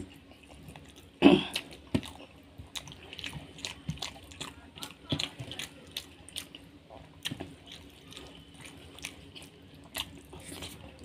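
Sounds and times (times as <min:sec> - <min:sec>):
wet chewing sounds: 0:00.0 - 0:11.0.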